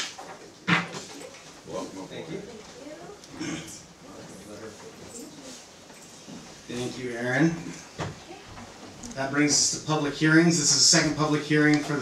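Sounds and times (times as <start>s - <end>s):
indistinct chatter of people: 1.0s - 12.0s.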